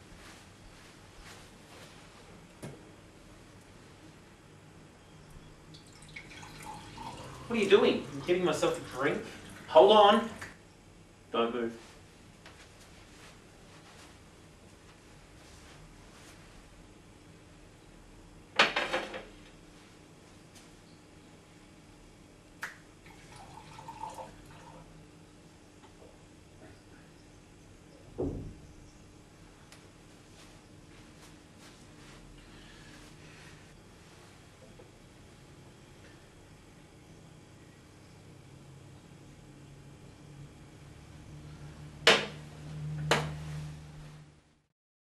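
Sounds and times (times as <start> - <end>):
low steady hum: 0.0 - 44.7
liquid pouring into a glass: 5.7 - 9.7, 23.0 - 24.9.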